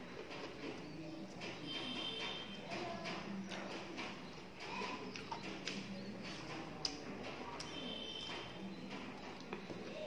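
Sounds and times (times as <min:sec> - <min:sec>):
person chewing food: 0:03.3 - 0:10.0.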